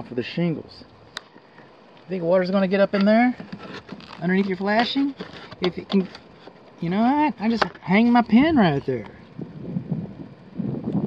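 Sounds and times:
wind buffeting microphone: 7.6s - 11.0s.

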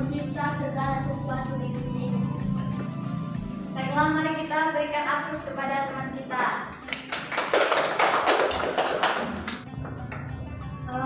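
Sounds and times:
people clapping: 6.8s - 10.4s.

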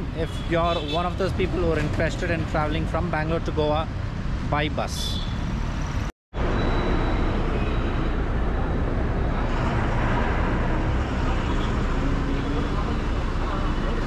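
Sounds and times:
road traffic noise: 0.0s - 14.0s.

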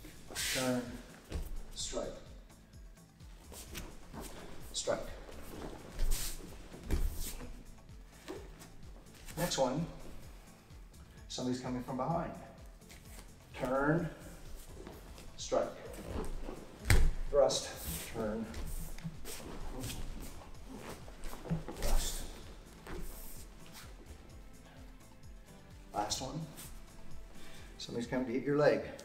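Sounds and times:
wooden sword swishing: 0.0s - 1.6s, 3.5s - 7.6s, 15.8s - 24.1s
fabric rustling: 3.4s - 10.3s, 14.3s - 25.0s
bare foot stepping on mat: 3.5s - 7.6s, 16.0s - 24.2s.

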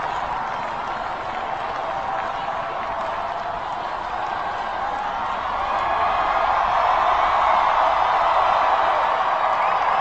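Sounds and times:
large crowd cheering: 0.0s - 10.0s.

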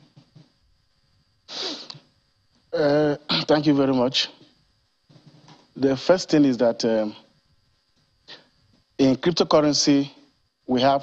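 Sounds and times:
man's sharp hissy breath: 1.5s - 2.0s
man speaking: 2.8s - 4.4s, 5.8s - 7.2s, 9.0s - 11.0s.

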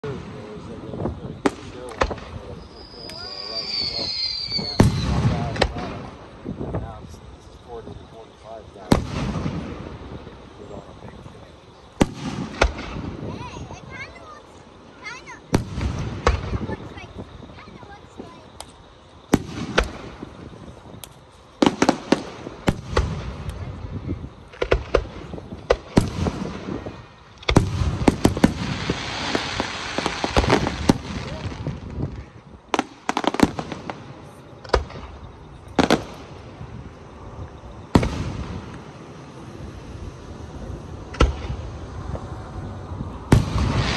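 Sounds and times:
fireworks bursting: 0.0s - 43.9s
hissing haze: 0.0s - 43.9s.

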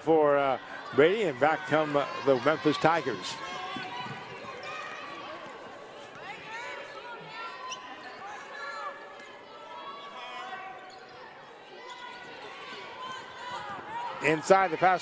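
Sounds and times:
sneaker squeaks: 7.6s - 8.7s, 10.5s - 12.8s.

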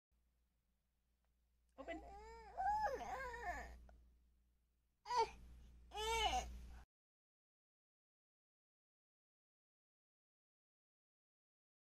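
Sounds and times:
child whining: 2.0s - 3.8s, 5.1s - 6.5s.

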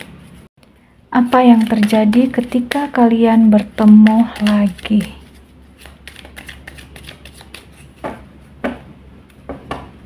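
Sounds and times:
cards being shuffled: 1.4s - 3.0s, 3.8s - 8.1s.

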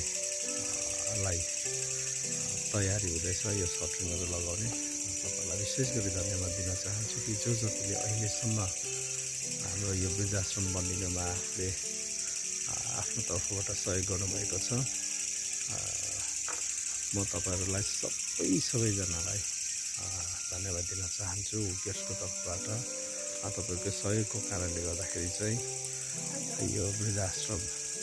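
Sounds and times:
high-pitched hiss: 0.0s - 28.0s.

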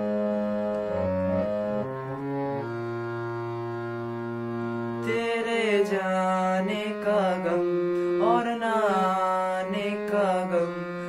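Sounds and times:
harmonium chords: 0.0s - 11.0s
young man singing with vibrato: 5.0s - 11.0s.

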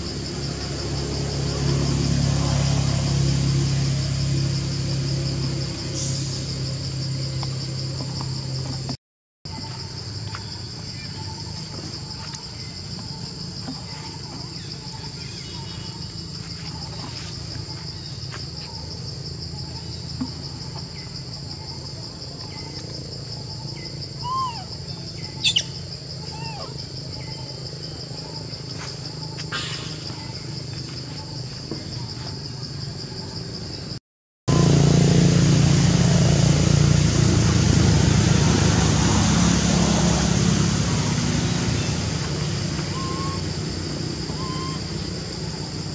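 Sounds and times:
high-pitched insect drone: 9.5s - 33.8s, 39.0s - 45.9s
bird chirps: 23.6s - 27.5s, 42.8s - 43.5s, 44.3s - 45.1s.

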